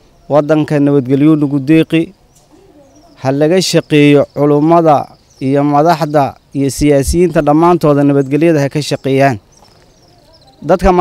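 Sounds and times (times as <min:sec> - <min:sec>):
man talking: 0:00.3 - 0:02.2, 0:03.2 - 0:09.5, 0:10.6 - 0:11.0.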